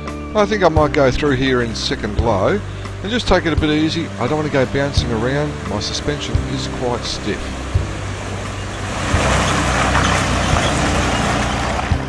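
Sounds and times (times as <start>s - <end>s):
vehicle engine running steadily: 0.0s - 12.0s
water splashing around wheels: 0.6s - 12.0s.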